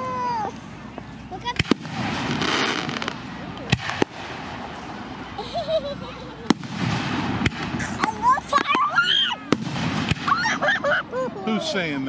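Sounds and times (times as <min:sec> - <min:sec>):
fireworks exploding: 0:00.0 - 0:11.9.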